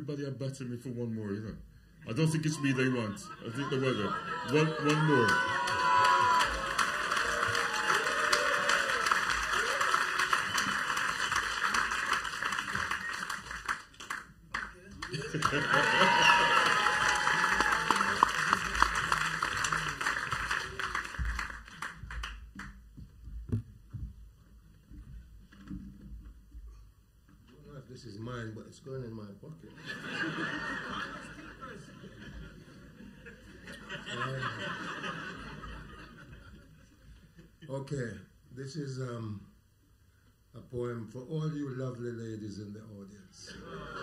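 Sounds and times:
audience applauding: 3.7 - 22.8.

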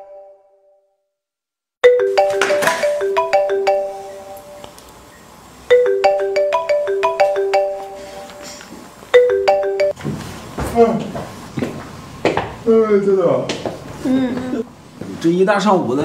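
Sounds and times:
phone ringtone with mallet notes: 1.8 - 4.8, 5.7 - 10.0.

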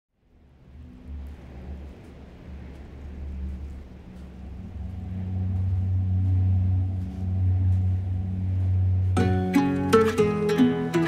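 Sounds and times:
low rumbling drone: 0.2 - 11.0.

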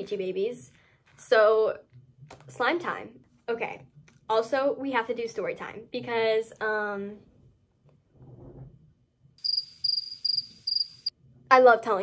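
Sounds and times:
cricket chirps: 9.4 - 11.1.

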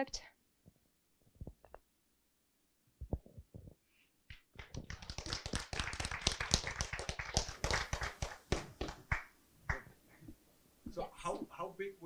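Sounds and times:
audience applause: 4.6 - 9.8.

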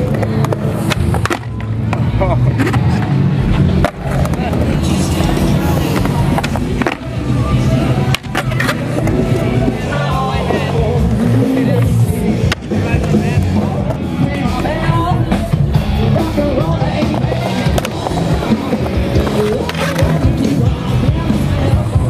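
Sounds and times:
skateboard clacks: 0.0 - 7.2, 7.9 - 9.6, 16.7 - 22.0
music: 0.0 - 22.0
skateboard trucks grinding: 0.0 - 22.0
skateboard wheels rolling on concrete: 0.0 - 22.0.

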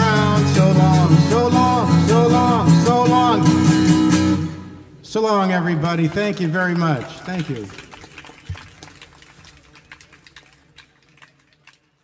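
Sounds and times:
scattered clapping: 5.8 - 12.0.

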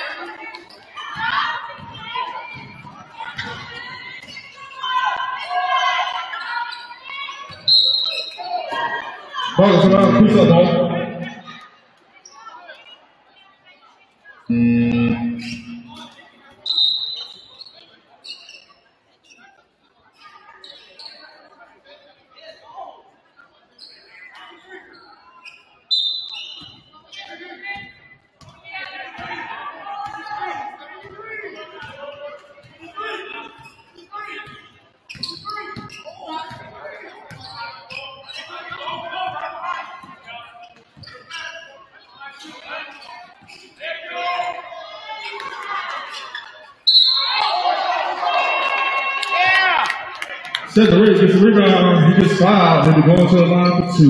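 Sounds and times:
voices of players and spectators: 0.0 - 54.0.

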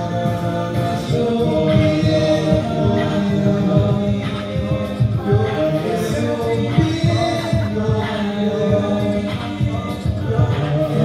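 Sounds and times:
male a cappella group singing: 0.0 - 11.0
vocal percussion pulse: 0.0 - 11.0.

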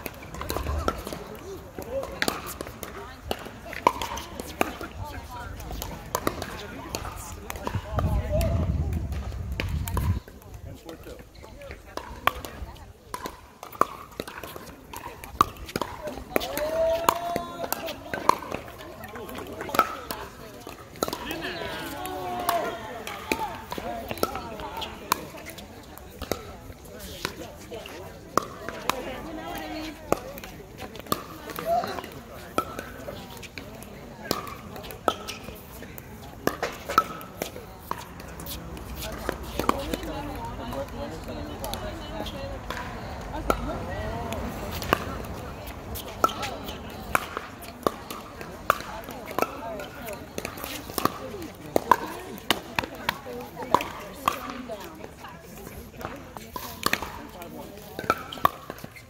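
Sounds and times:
ball bouncing on court: 0.0 - 10.2, 11.6 - 55.0, 56.0 - 59.0
voices of players: 0.0 - 59.0.

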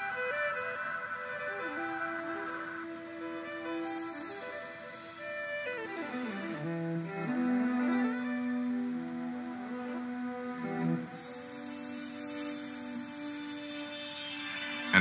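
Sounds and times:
electric viola long held notes: 5.7 - 11.9.

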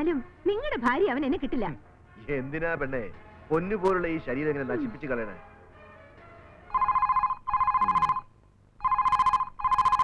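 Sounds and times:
telephone ringing: 6.7 - 10.0.

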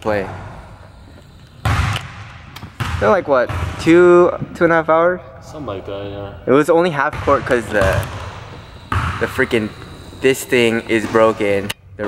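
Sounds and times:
basketball bouncing on hardwood floor: 1.6 - 2.0, 2.8 - 3.9, 7.2 - 9.4.

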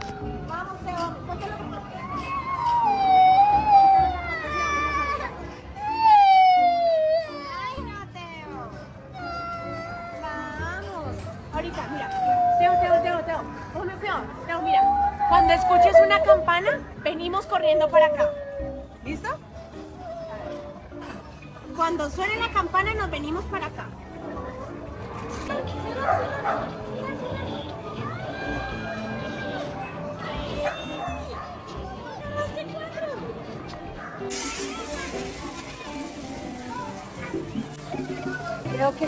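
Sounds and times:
high whimpering cries: 2.1 - 7.6
young boy crying: 2.5 - 7.8, 9.1 - 10.5.

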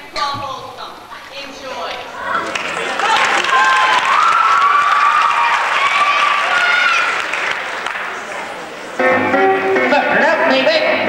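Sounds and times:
audience applauding: 2.2 - 9.0
people shouting: 3.0 - 7.2.

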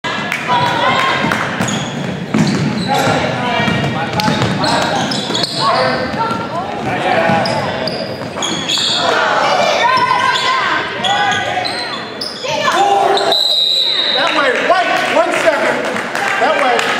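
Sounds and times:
basketball bouncing on wooden floor: 1.6 - 4.6.

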